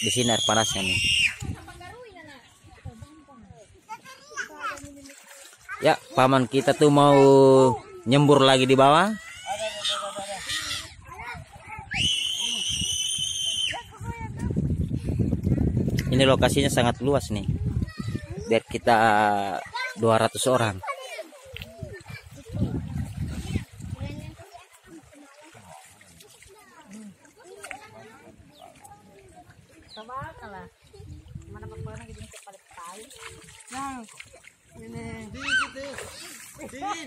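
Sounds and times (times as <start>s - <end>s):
faint voices and calls: 0.0s - 15.8s, 17.6s - 37.0s
high-pitched human scream: 11.9s - 13.9s.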